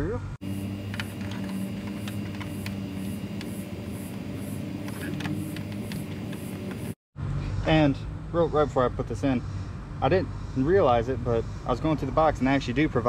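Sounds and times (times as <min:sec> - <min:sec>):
low background hum: 0:00.2 - 0:10.6.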